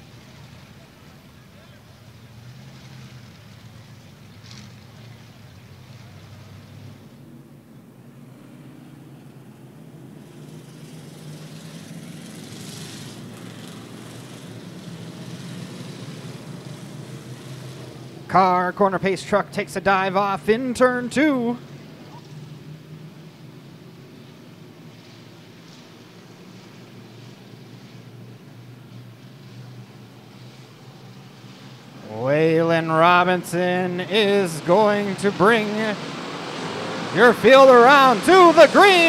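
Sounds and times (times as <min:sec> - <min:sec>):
race car engines droning: 0:00.0 - 0:39.0.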